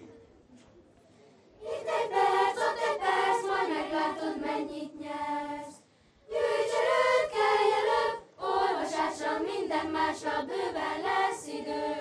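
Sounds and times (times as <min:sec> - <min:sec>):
children's choir singing: 0:01.6 - 0:12.0.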